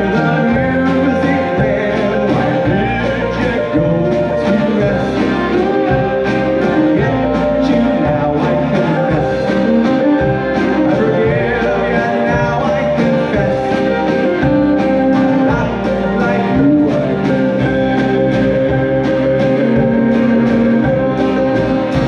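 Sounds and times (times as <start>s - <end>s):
folk-rock band playing: 0.0s - 22.0s
man singing: 0.0s - 22.0s.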